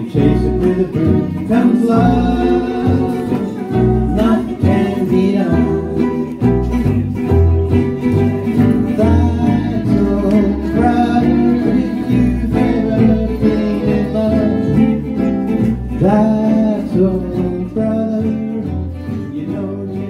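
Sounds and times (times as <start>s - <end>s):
bowed fiddle: 0.0s - 20.0s
strummed acoustic guitars: 0.0s - 20.0s
upright double bass: 0.0s - 20.0s.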